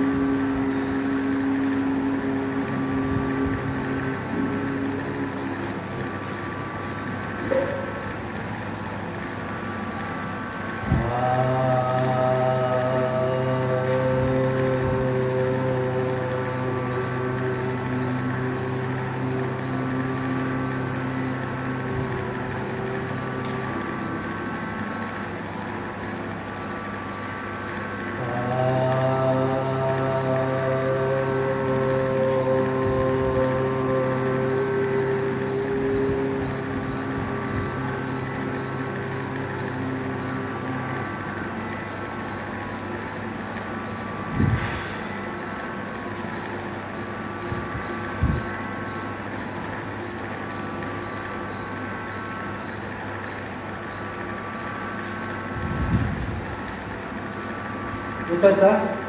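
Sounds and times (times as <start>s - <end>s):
man humming deep tones: 0.0s - 8.8s, 10.0s - 51.8s
faint humming voices: 0.0s - 59.0s.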